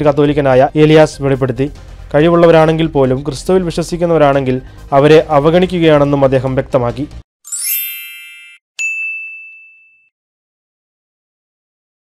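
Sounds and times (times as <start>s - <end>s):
shimmering high chime: 7.4s - 10.1s
high ding ringing: 7.5s - 10.1s.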